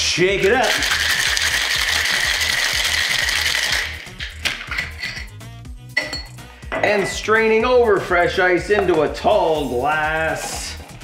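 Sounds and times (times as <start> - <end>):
background music with steady beat: 0.0 - 11.0
ice rattling in cocktail shaker: 0.3 - 5.3.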